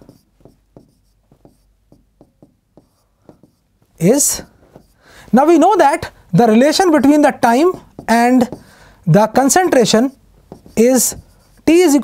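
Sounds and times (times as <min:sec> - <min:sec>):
hand writing on board: 0:00.0 - 0:05.6, 0:06.7 - 0:12.0.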